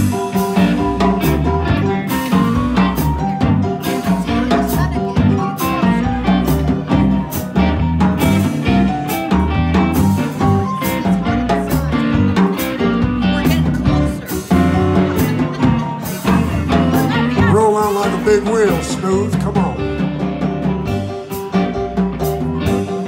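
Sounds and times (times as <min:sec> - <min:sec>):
drums keeping steady beat: 0:00.0 - 0:23.0
live blues band playing: 0:00.0 - 0:23.0.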